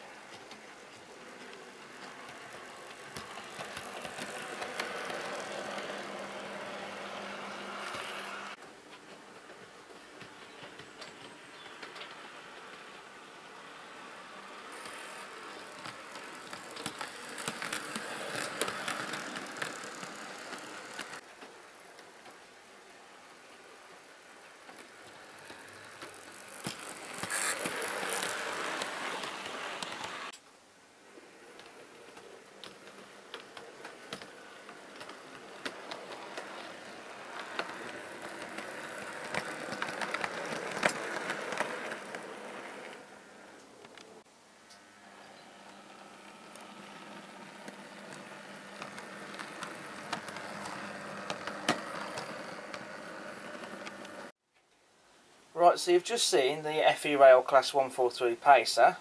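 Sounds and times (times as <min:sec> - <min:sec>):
wheels clicking over rail joints: 0:00.2 - 0:22.4, 0:24.2 - 0:30.4, 0:31.4 - 0:44.3, 0:45.8 - 0:54.3
model train motor whirring: 0:00.5 - 0:08.6, 0:11.6 - 0:21.2, 0:24.6 - 0:30.4, 0:31.3 - 0:44.1, 0:44.9 - 0:54.3.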